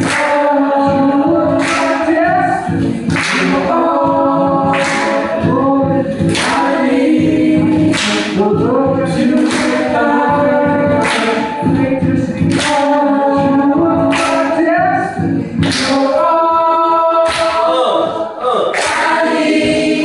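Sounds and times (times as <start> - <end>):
voices singing in harmony: 0.0 - 20.0.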